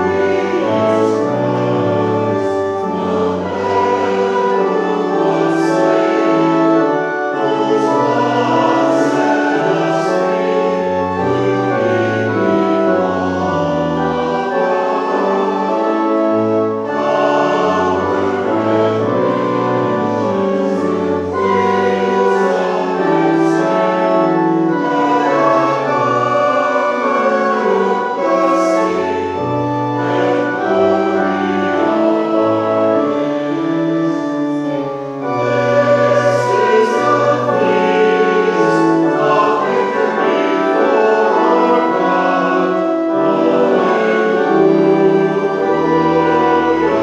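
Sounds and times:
pipe organ: 0.0 - 47.0
voices singing a hymn: 0.0 - 47.0.

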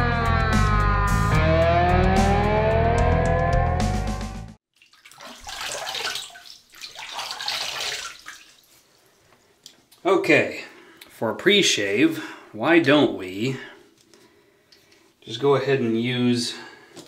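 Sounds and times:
background music: 0.0 - 4.6
water splashing at a sink: 4.7 - 8.9.

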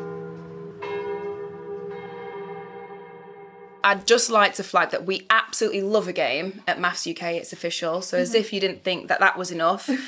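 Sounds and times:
chiming bell chord: 0.0 - 3.8.

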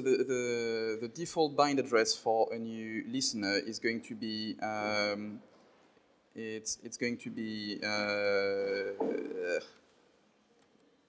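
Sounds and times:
man saying uhh: 7.8 - 9.7.

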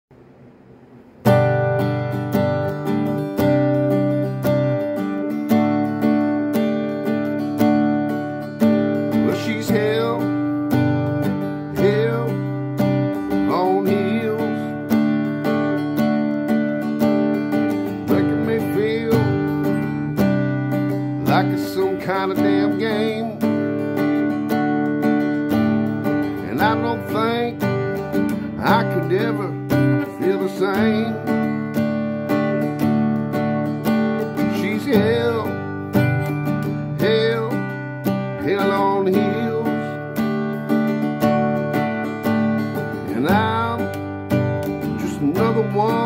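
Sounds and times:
acoustic guitar strumming chords: 0.3 - 46.0.

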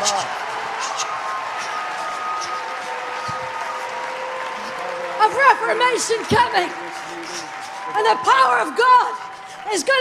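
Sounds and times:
large indoor crowd noise: 0.0 - 10.0.

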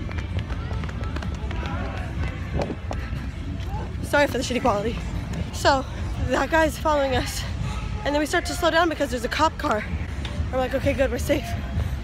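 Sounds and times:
footsteps running: 0.0 - 5.8
faint voices: 0.0 - 12.0.

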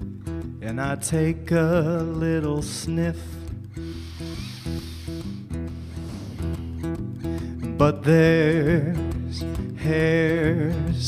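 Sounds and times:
acoustic guitar picking notes: 0.0 - 11.0.

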